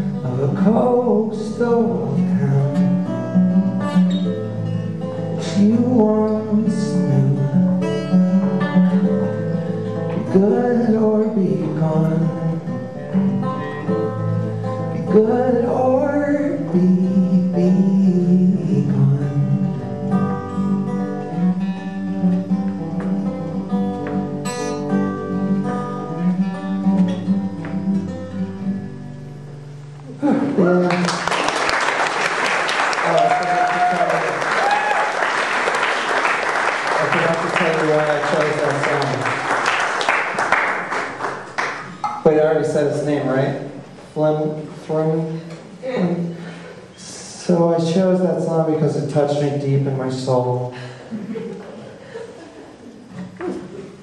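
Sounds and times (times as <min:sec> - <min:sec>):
acoustic guitar: 0:00.0 - 0:54.0
man singing: 0:00.1 - 0:03.1, 0:05.4 - 0:08.7, 0:10.2 - 0:12.8, 0:14.9 - 0:19.9
audience applause: 0:30.6 - 0:41.9.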